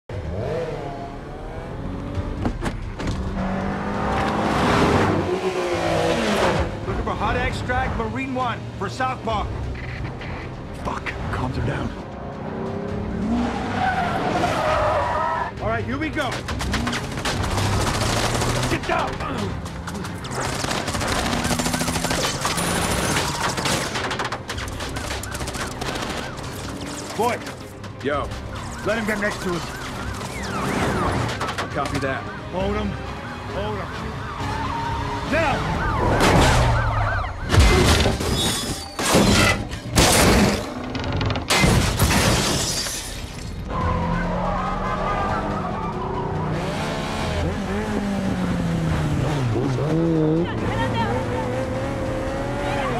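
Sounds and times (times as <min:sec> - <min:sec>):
vehicle engines revving: 0:00.1 - 0:38.7, 0:43.5 - 0:52.9
sharp cracks: 0:16.3 - 0:27.6
rapid automatic gunfire: 0:20.3 - 0:22.4.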